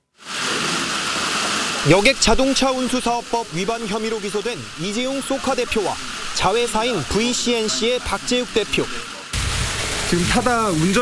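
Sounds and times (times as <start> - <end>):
outdoor ambient hiss: 0.0 - 11.0
person speaking: 1.8 - 9.2, 10.1 - 11.0.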